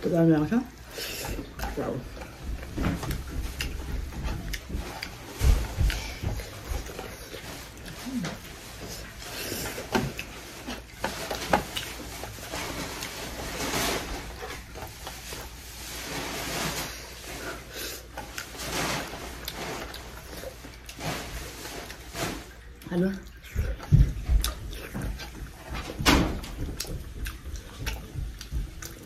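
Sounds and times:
wet chewing and mouth noises: 0:00.8 - 0:13.5, 0:16.8 - 0:29.0
chewing and mouth smacks: 0:22.7 - 0:25.7, 0:26.7 - 0:29.0.

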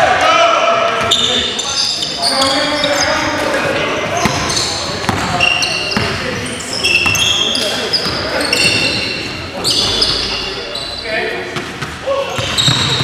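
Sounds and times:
players calling out: 0:00.0 - 0:13.0
sneakers squeaking: 0:00.9 - 0:13.0.

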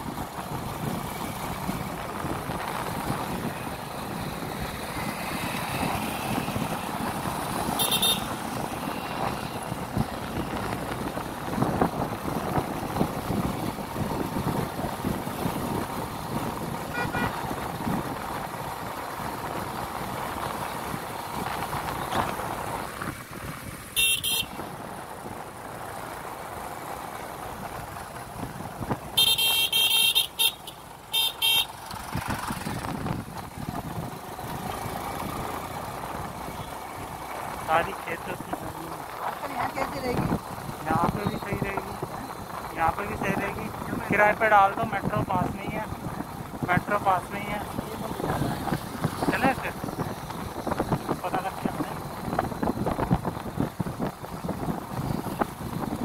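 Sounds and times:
road and traffic noise: 0:00.0 - 0:56.0.

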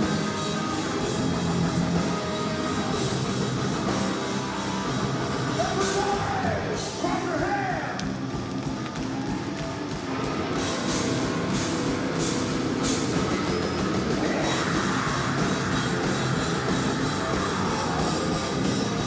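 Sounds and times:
distorted electric guitars: 0:00.0 - 0:19.0.

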